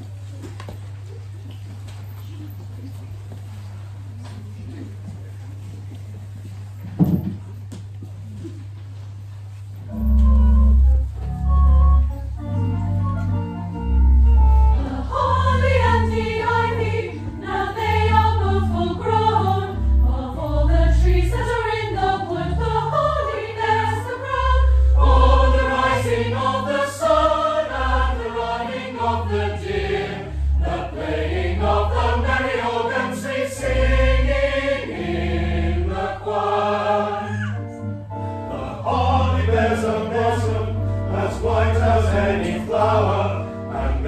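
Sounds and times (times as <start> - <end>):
organ bass notes: 9.9 - 36.7, 37.8 - 44.0
choir singing a carol: 9.9 - 44.0.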